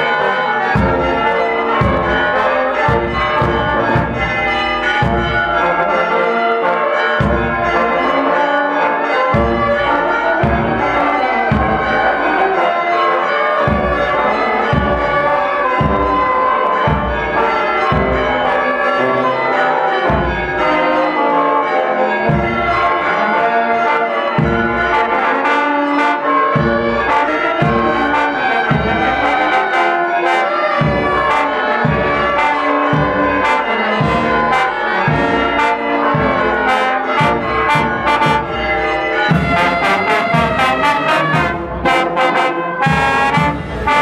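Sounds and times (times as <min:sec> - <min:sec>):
brass band playing a march: 0:00.0 - 0:44.0
low drum beat: 0:00.8 - 0:01.2, 0:01.8 - 0:05.5, 0:11.5 - 0:12.0, 0:13.7 - 0:18.2, 0:39.3 - 0:42.2, 0:42.9 - 0:44.0.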